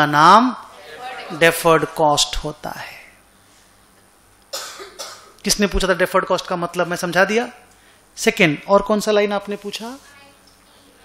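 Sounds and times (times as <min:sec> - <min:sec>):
man coughing: 0:04.5 - 0:05.4.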